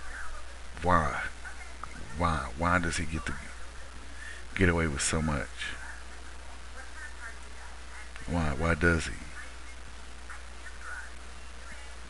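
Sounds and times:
faint indistinct sounds: 0:00.0 - 0:12.0
low hum and hiss: 0:00.0 - 0:12.0
man speaking: 0:02.2 - 0:03.5, 0:04.6 - 0:05.8, 0:08.2 - 0:09.3.

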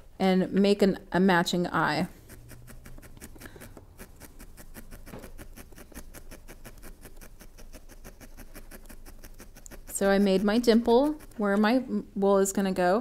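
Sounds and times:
felting needle soft ticks: 0:02.1 - 0:11.7.

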